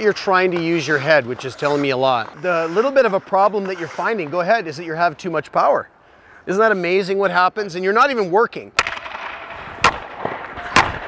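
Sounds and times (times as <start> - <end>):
hockey pucks cracking: 0.0 - 5.4, 8.8 - 11.0.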